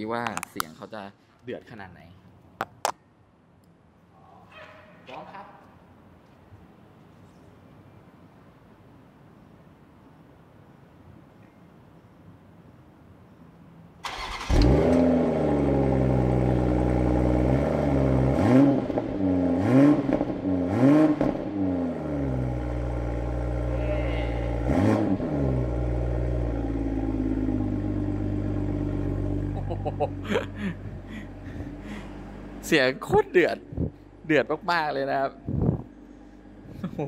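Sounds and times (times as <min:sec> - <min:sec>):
car engine revving and idling: 0:14.4 - 0:37.0.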